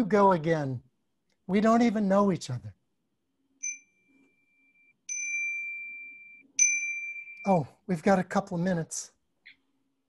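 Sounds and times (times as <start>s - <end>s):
person speaking: 0.0s - 2.8s, 7.4s - 9.2s
ringing chime strikes: 3.6s - 4.0s.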